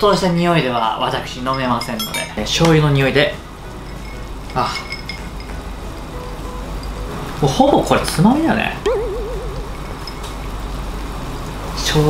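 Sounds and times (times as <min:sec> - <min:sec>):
drinking glass clinking: 0:00.6 - 0:07.4, 0:09.7 - 0:10.7.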